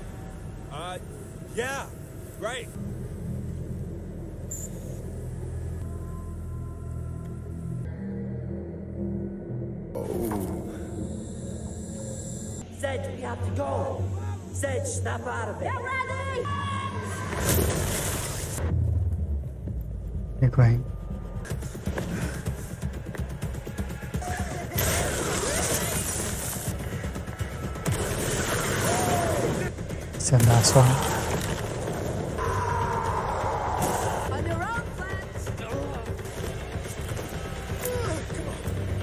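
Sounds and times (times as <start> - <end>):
soundtrack music: 2.1 - 39.0.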